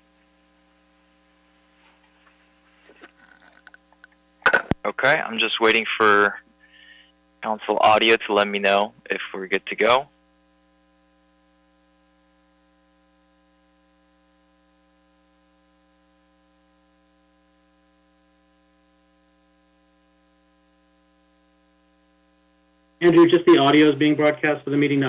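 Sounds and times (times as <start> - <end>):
faint electrical hum: 0.0 - 25.0.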